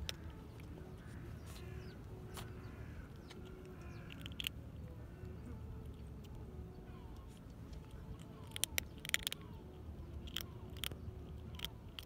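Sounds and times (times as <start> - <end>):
kitten crunching dry kibble: 0.0 - 12.0.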